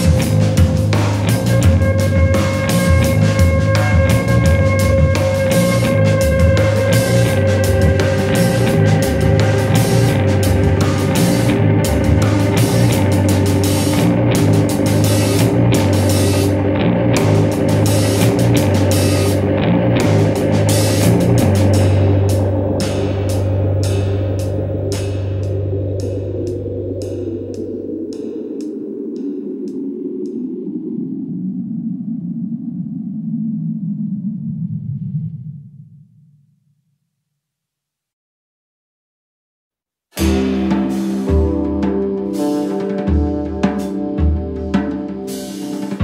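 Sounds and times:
guitars playing: 0.0s - 27.8s, 40.2s - 46.0s
drum kit: 0.0s - 28.7s, 40.2s - 46.0s.

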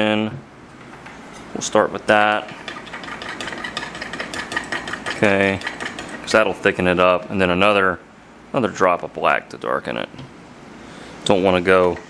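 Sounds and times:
spoon scraping glass cup: 2.4s - 6.3s.

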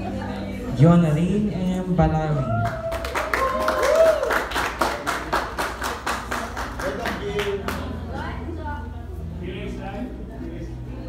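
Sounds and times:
audience clapping: 2.6s - 8.0s.

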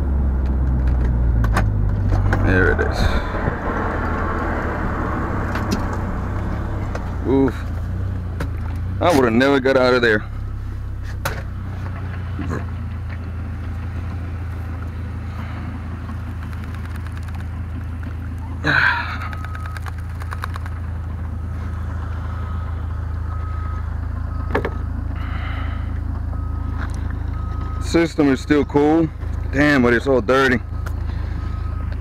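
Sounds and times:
car engine idling: 0.0s - 32.0s.

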